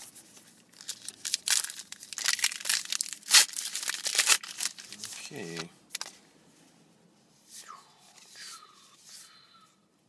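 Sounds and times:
wrapper crinkling and tearing: 0.6s - 6.1s.

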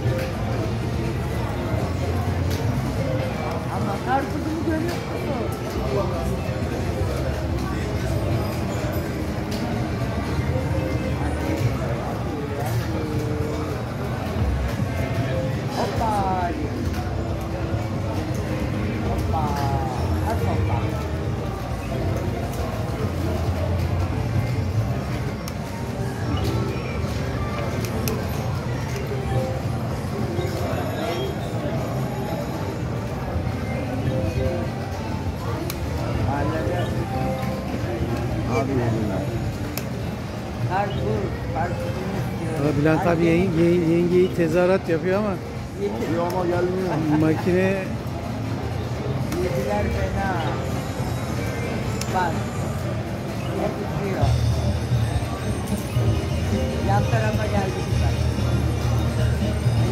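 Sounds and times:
slot machine music and jingles: 54.2s - 59.9s.

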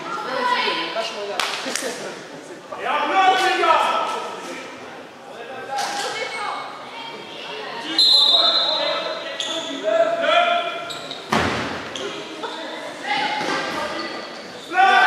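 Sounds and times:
players shouting in gym: 14.6s - 15.0s.

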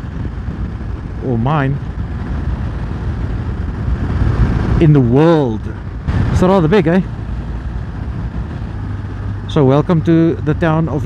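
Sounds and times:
motorcycle engine rumble: 0.0s - 11.0s
wind noise on microphone: 0.0s - 11.0s
man talking: 1.2s - 1.8s, 4.8s - 5.7s, 6.3s - 7.1s, 9.5s - 11.0s.

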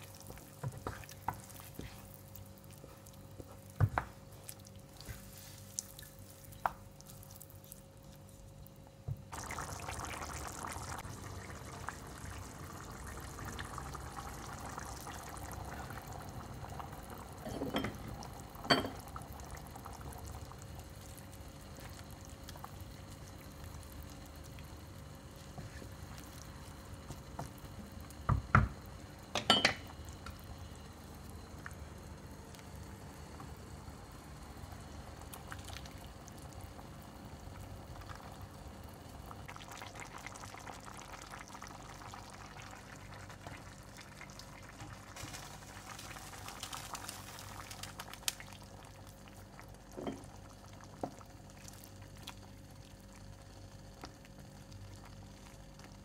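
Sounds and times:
wet sloshing and bubbling: 0.0s - 17.5s
broth bubbling: 4.3s - 29.2s, 29.9s - 56.0s.

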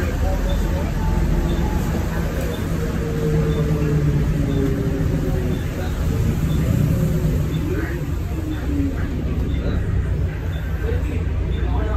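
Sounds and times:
bus engine rumble: 0.0s - 11.9s
drivetrain tones: 0.0s - 11.9s
road noise: 0.0s - 11.9s.

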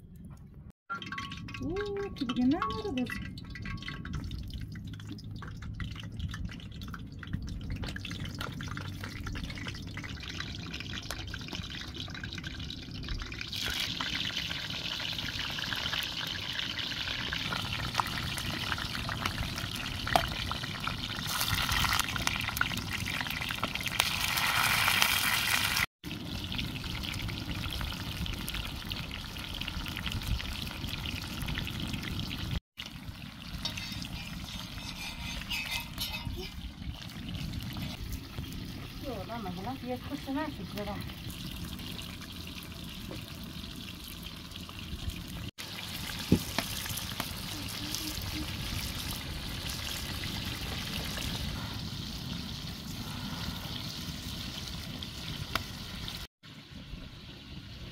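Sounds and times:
vegetables sizzling in hot oil: 9.9s - 35.6s, 37.3s - 51.4s.

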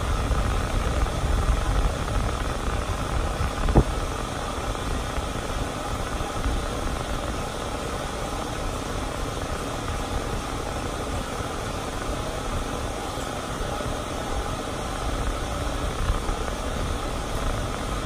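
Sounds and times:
dryer blowing air: 0.0s - 18.0s.

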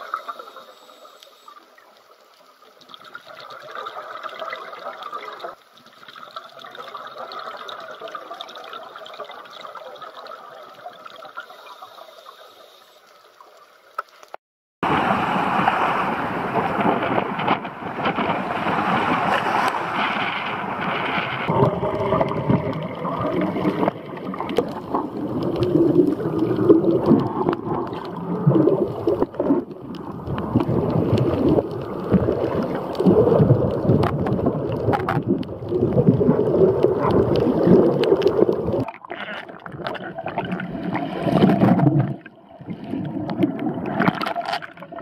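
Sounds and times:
underwater churning and bubbling: 0.0s - 45.0s
surf washing: 14.8s - 45.0s.

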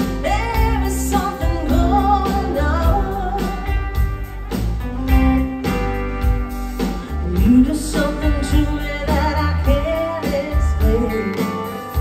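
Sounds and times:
woman singing into microphone: 0.0s - 4.0s, 7.2s - 12.0s
guitar: 0.0s - 12.0s.

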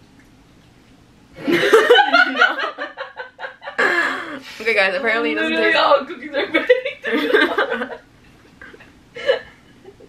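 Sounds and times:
woman laughing: 1.4s - 4.4s, 6.3s - 10.0s.

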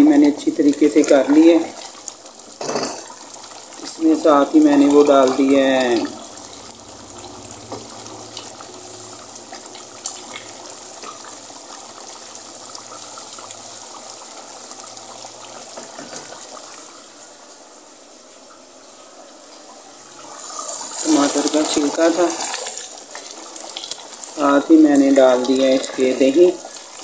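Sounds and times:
meat sizzling in a pot: 0.0s - 27.0s
wooden spoon scraping a pot: 20.4s - 23.3s.

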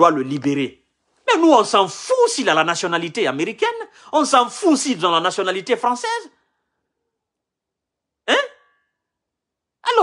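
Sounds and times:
man speaking: 0.0s - 6.4s, 8.2s - 8.7s.

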